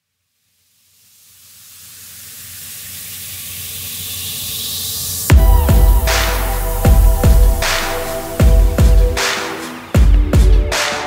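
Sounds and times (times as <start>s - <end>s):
white-noise riser: 0.3s - 9.5s
low synth note: 5.3s - 9.2s
held synth chord: 5.3s - 9.4s.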